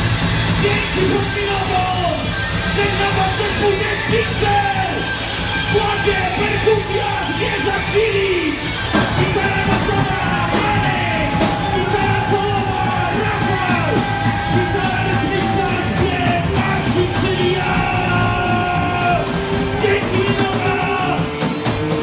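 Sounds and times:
rock band playing: 0.0s - 22.0s
singer yelling: 0.5s - 21.4s.

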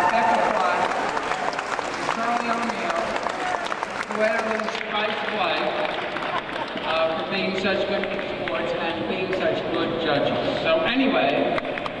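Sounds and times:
audience applauding: 0.0s - 9.5s.

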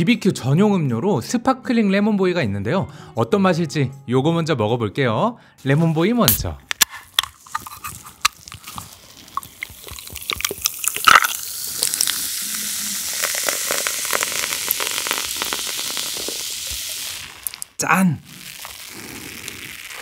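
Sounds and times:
soda fizzing over ice: 7.6s - 20.0s.

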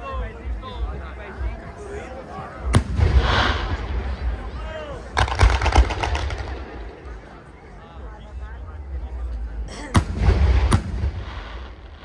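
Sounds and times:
fireworks bangs: 2.8s - 4.5s, 5.1s - 7.2s, 10.0s - 12.0s
fireworks crackling: 2.8s - 7.3s, 10.1s - 12.0s.

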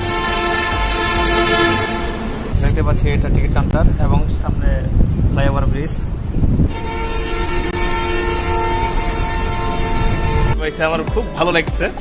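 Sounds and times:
train horn chord: 0.0s - 2.5s, 6.7s - 10.6s
train rumble: 0.0s - 12.0s.

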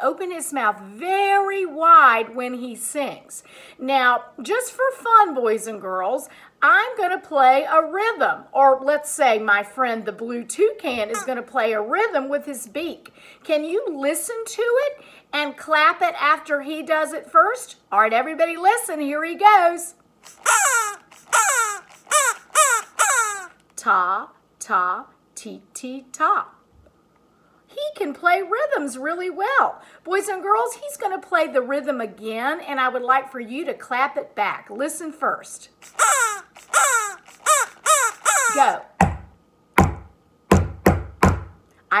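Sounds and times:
crow-like calls falling in pitch: 20.4s - 23.6s, 35.9s - 38.8s
sharp percussive knocks: 39.8s - 41.5s.

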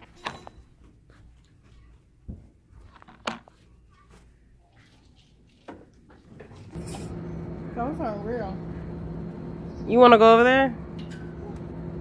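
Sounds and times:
faint handling noise: 0.0s - 6.8s
steady low hum: 6.4s - 12.0s.

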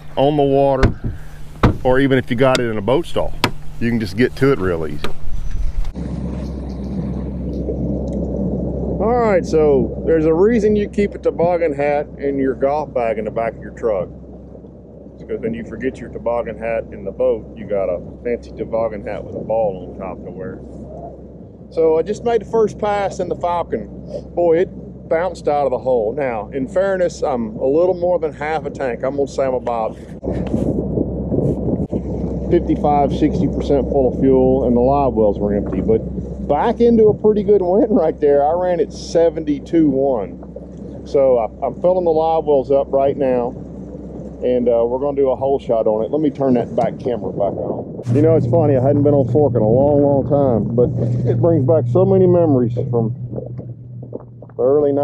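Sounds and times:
handling noise: 0.0s - 8.3s, 53.2s - 54.8s
outboard motor rumbling: 0.0s - 55.0s
wind buffeting microphone: 0.0s - 55.0s.

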